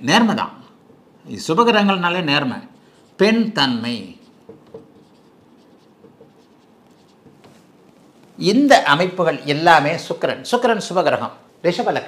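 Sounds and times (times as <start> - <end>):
low room hiss: 0.0 - 12.0
marker writing on whiteboard: 2.7 - 8.4.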